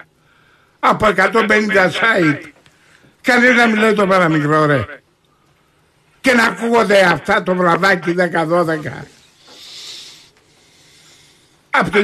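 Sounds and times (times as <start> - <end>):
person breathing: 0.2 - 0.8, 9.2 - 11.7.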